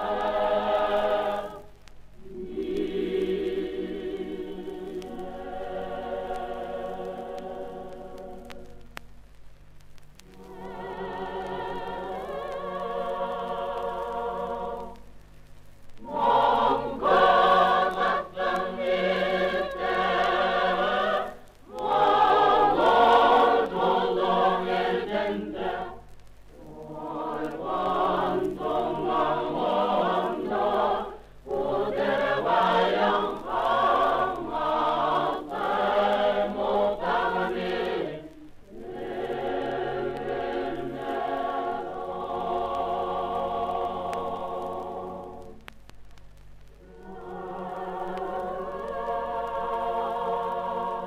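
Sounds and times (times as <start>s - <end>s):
mixed choir singing: 0.0s - 8.9s, 10.3s - 15.0s, 16.0s - 26.0s, 26.6s - 45.7s, 46.8s - 51.0s.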